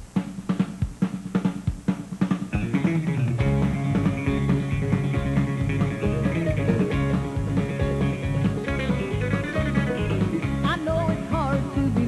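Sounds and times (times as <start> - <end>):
drum and bass beat: 0.0 - 12.0
country guitars: 2.5 - 12.0
sliding guitar lead notes: 2.6 - 12.0.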